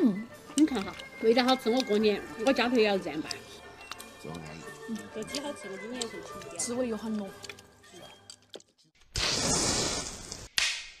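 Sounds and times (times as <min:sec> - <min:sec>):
whip-like crack: 0:09.2 - 0:11.0.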